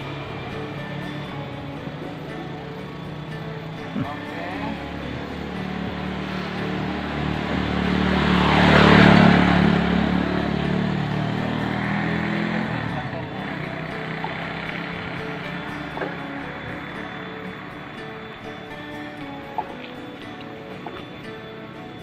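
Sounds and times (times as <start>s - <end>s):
vehicle passing on road: 0.0s - 22.0s.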